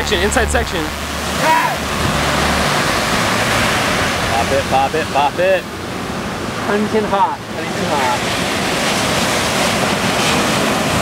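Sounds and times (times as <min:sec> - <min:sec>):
wind on microphone: 0:00.0 - 0:05.2
ocean surf breaking: 0:00.0 - 0:11.0.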